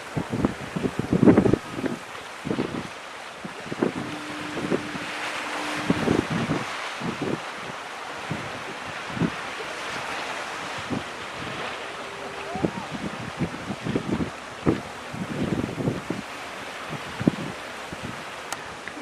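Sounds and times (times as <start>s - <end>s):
harbour water washing: 0.0s - 19.0s
wind buffeting microphone: 0.0s - 19.0s
faint steady tone: 1.7s - 19.0s.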